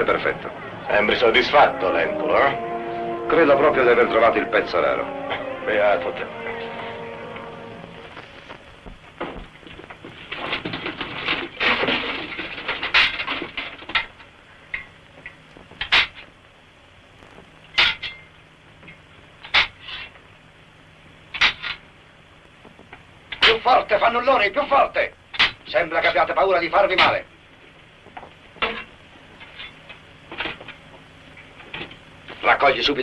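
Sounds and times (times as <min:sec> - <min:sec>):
metal weapons clanking on shields: 0:28.6 - 0:28.9.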